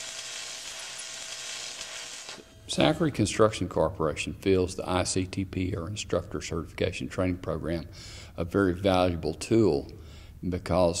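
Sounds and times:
steady hiss: 0.0s - 3.7s.

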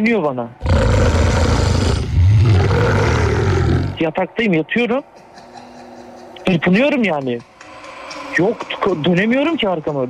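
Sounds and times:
rasping growl: 0.6s - 4.0s.

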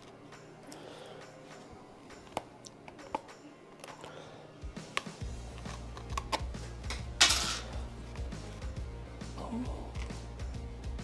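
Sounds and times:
tweezers clicking and scratching: 4.9s - 7.1s.

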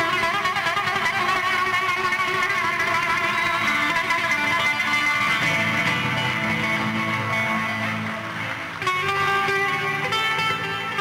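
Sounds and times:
live band instrumental music: 0.0s - 11.0s.

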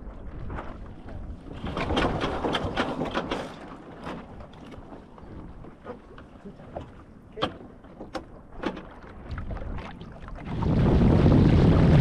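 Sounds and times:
water lapping against boat hull: 0.0s - 12.0s
wind rumble on microphone: 0.0s - 12.0s.

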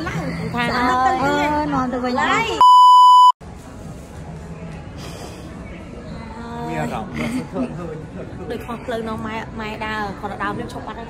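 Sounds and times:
indoor crowd sound: 0.0s - 11.0s
electronic bleep tone: 2.6s - 3.4s.

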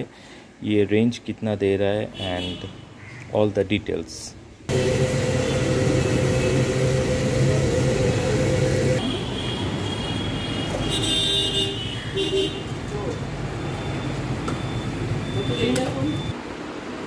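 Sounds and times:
traffic noise: 1.9s - 17.0s
motor humming: 4.7s - 9.0s.

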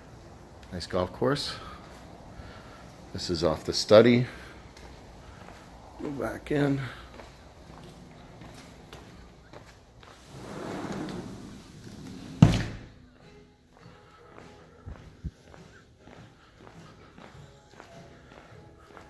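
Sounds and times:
faint footsteps: 0.0s - 12.2s, 12.8s - 19.0s
soft background music: 0.0s - 19.0s
sliding glass door rolling: 10.2s - 12.6s
door shutting with a thud: 12.4s - 13.0s.

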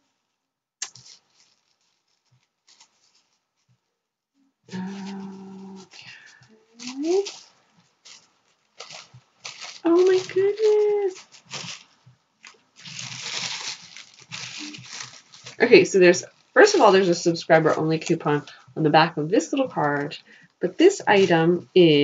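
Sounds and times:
packaging rustling and crinkling: 0.0s - 3.8s, 4.7s - 18.6s
woman humming: 4.7s - 7.3s
woman's wordless vocal sounds: 4.7s - 7.3s.

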